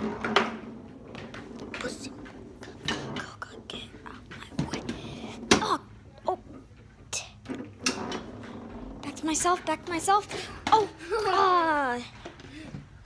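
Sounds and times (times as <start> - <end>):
foosball knocks and clacks: 0.0 - 5.8.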